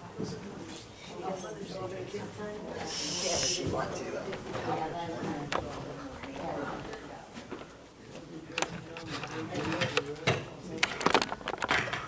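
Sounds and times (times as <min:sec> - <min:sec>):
murmuring voices: 0:02.7 - 0:07.3
sharp hiss: 0:02.9 - 0:03.7.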